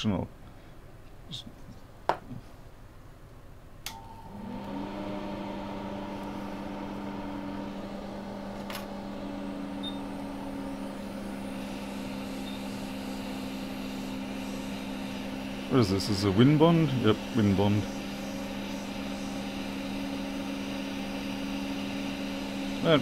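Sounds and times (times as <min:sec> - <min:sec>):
hot-air blower humming: 0:03.8 - 0:23.0.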